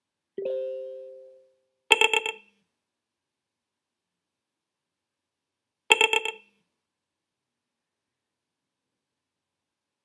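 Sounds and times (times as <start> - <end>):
two-note chime: 0.4 - 1.6.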